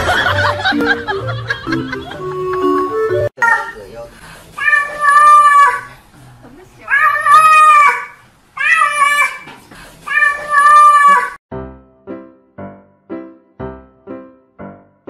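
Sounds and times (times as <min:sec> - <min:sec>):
cat meowing: 0:04.6 - 0:05.9, 0:06.9 - 0:09.5, 0:10.1 - 0:11.4.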